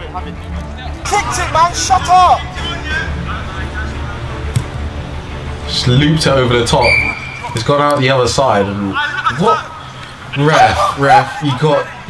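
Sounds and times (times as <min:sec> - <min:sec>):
low background music: 0:00.0 - 0:12.0.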